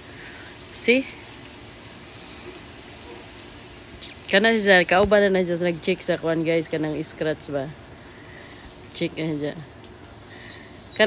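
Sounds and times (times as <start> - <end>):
garden hose spraying water: 0.0 - 11.0.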